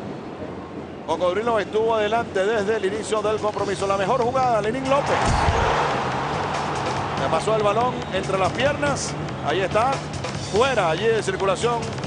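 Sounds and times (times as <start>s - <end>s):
crowd cheering: 4.8s - 9.9s.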